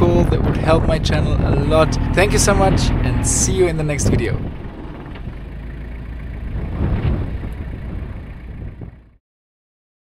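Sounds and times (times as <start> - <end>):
car engine driving on sand: 0.0 - 9.2.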